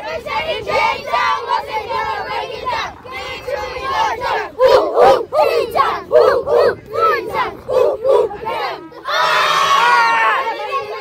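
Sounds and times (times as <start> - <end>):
children chanting in rhythm: 0.0 - 11.0
loud group yell: 8.0 - 11.0.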